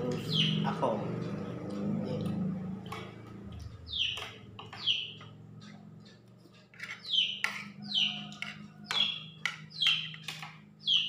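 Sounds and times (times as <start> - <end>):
bird chirping: 0.0 - 2.2, 3.5 - 11.0.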